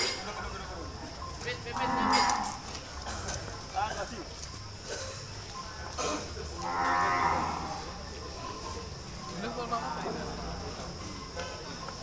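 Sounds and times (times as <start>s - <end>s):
cattle mooing: 1.7s - 2.6s, 6.6s - 7.8s.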